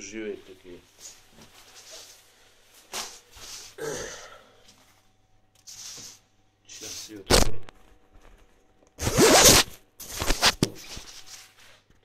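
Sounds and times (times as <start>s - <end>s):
zipper rasping: 9.0s - 10.6s.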